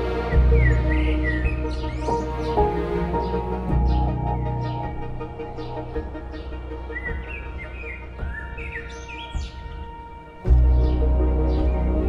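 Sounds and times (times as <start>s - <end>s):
small birds chirping: 0.0s - 12.0s
soft background music: 0.0s - 12.0s.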